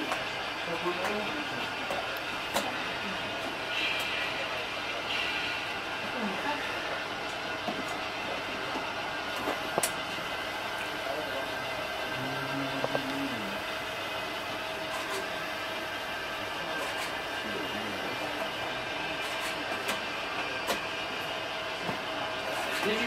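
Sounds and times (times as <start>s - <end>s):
model steam locomotive hiss: 3.6s - 7.0s.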